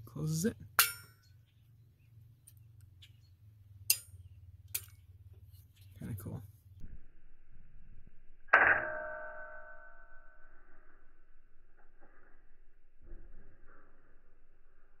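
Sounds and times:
sharp metallic clang ringing: 0:00.7 - 0:01.4, 0:03.8 - 0:05.0, 0:08.4 - 0:11.1.

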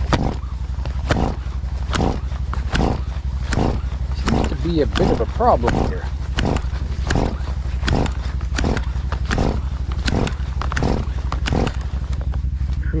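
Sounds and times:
chainsaw recoil starter yanked: 0:00.0 - 0:12.2
steady low rumble: 0:00.0 - 0:13.0.

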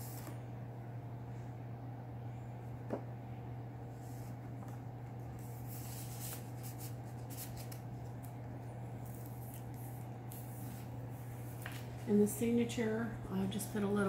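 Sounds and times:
steady low hum: 0:00.0 - 0:14.0
paper and card rustling: 0:05.4 - 0:08.4.

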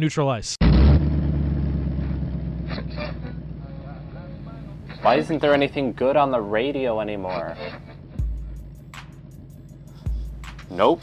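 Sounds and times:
car engine idling: 0:00.6 - 0:11.0.

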